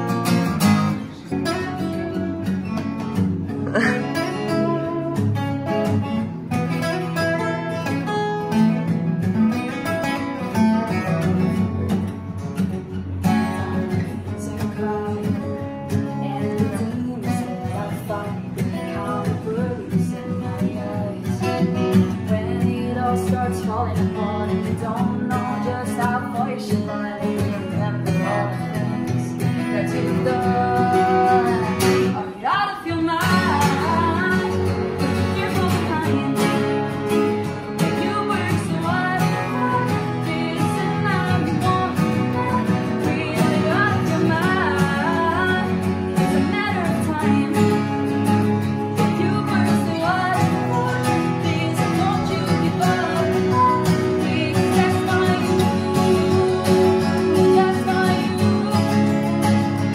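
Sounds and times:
woman singing: 0.0s - 8.9s, 13.2s - 59.9s
acoustic guitars playing: 0.0s - 59.9s.

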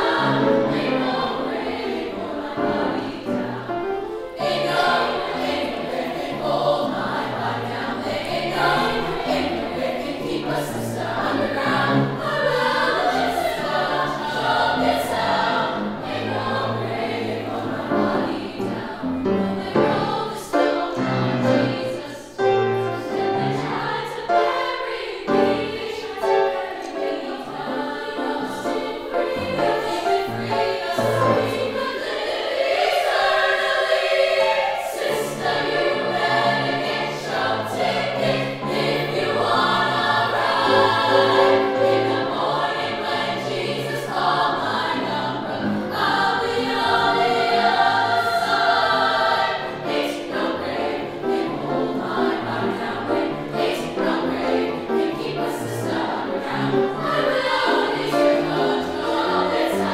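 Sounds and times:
grand piano: 0.0s - 59.9s
women's choir singing gospel: 0.0s - 59.9s.

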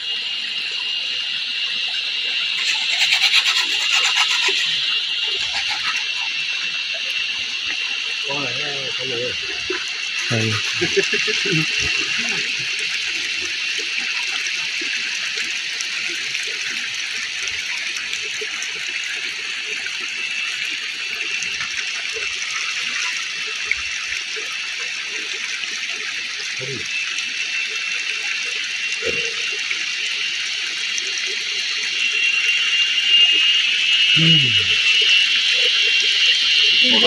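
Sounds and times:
high-pitched forest hiss: 0.0s - 15.4s.

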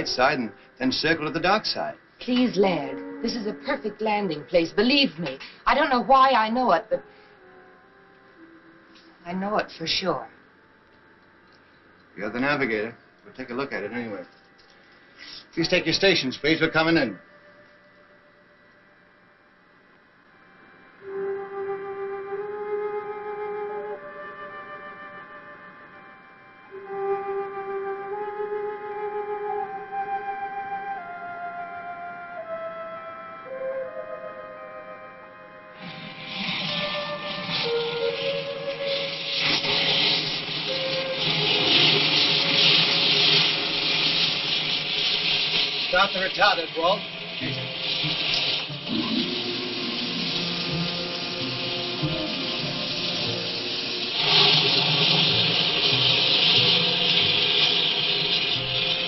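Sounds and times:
slow woodwind melody: 2.6s - 4.9s, 7.0s - 8.9s, 16.8s - 43.9s, 44.9s - 59.0s
rocket motor hiss: 35.8s - 59.0s.

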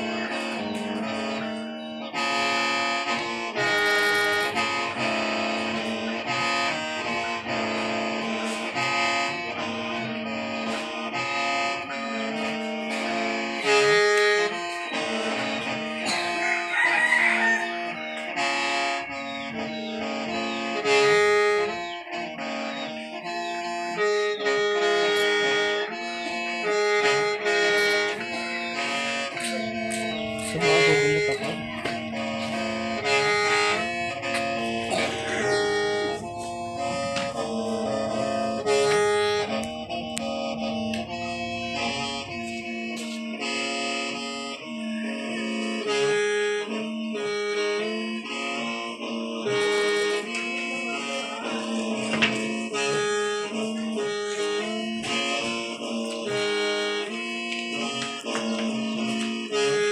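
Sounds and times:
mouth organ playing chords: 0.0s - 59.9s.

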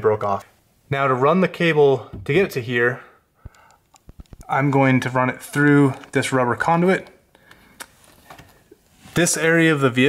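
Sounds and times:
soft ticks: 3.5s - 4.5s.

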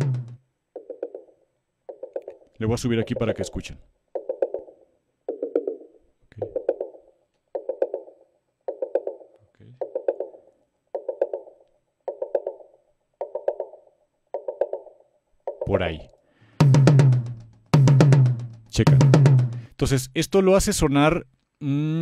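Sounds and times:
tom drum hits: 0.0s - 0.4s, 16.6s - 19.6s.

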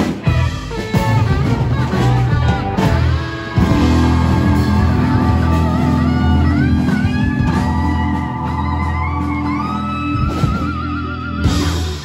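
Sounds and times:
electric guitar lead with bent notes: 0.0s - 12.0s
live band playing: 0.0s - 12.0s.

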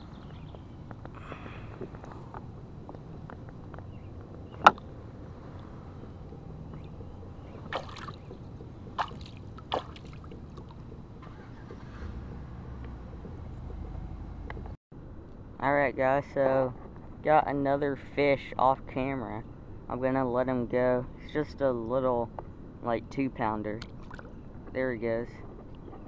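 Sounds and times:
water sloshing and splashing: 4.5s - 12.5s, 23.8s - 24.4s.

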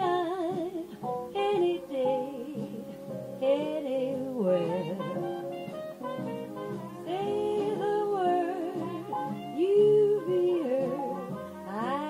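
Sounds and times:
jazz ballad: 0.0s - 12.0s.

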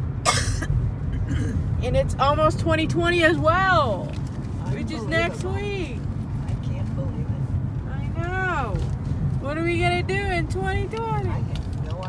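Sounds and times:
car road and engine rumble: 0.0s - 12.0s
person coughing: 0.2s - 1.6s.

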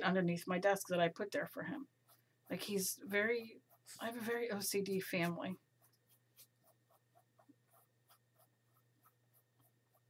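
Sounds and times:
paintbrush dabbing on canvas: 1.8s - 10.0s.

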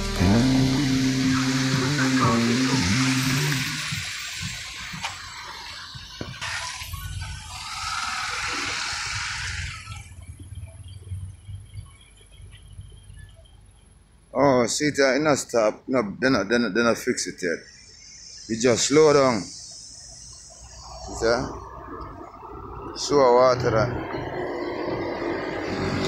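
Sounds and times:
car tyres hissing on wet road: 0.0s - 10.2s, 24.4s - 26.0s.

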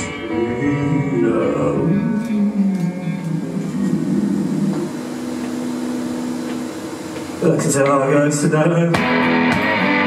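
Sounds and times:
sustained electric guitar drone: 0.0s - 10.0s.

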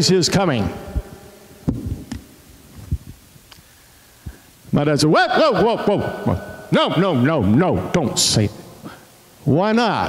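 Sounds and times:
microphone handling thumps: 0.9s - 3.2s.

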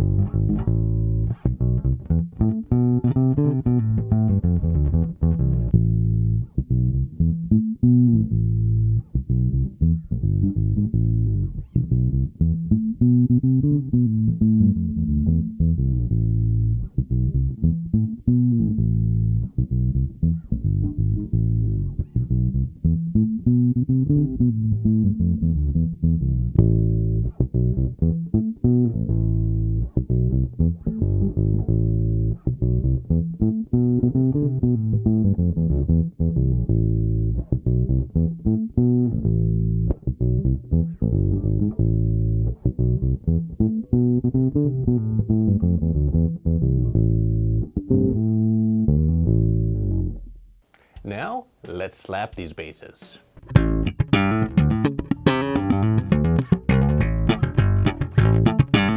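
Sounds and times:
dark fingerstyle bass line: 0.0s - 51.1s, 53.3s - 58.9s.

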